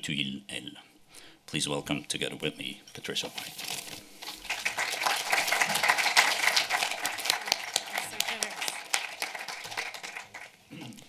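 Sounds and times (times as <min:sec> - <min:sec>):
audience applauding: 0:04.4 - 0:10.6.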